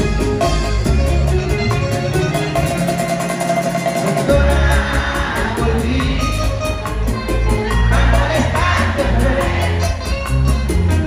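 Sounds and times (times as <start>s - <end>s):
acoustic guitar: 0.0s - 11.0s
crowd noise: 0.0s - 11.0s
steady bass: 0.0s - 11.0s
person singing: 4.0s - 11.0s.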